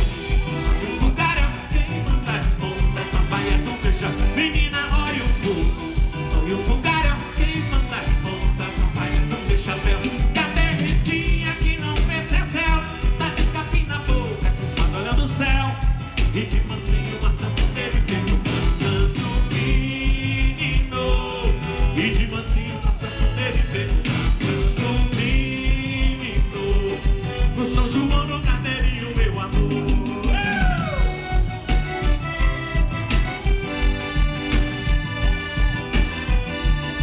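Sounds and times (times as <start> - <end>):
hand percussion: 0.0 - 37.0
live band playing: 0.0 - 37.0
steady kick drum beat: 0.0 - 37.0.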